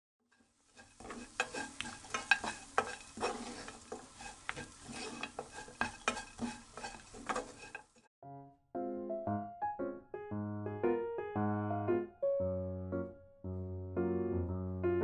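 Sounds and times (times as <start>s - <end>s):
light sizzling: 0.2s - 8.1s
wooden spatula scraping frying pan: 0.3s - 8.1s.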